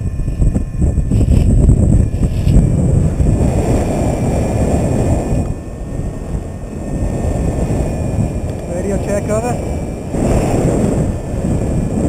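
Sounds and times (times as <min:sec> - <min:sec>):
wind rumbling over microphone: 0:00.0 - 0:12.0.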